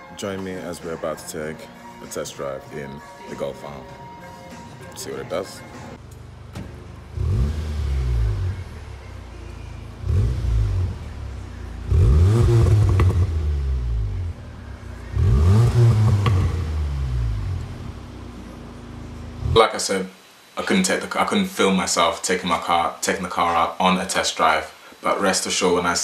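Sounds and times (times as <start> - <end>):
car engine revving: 6.4 - 19.7.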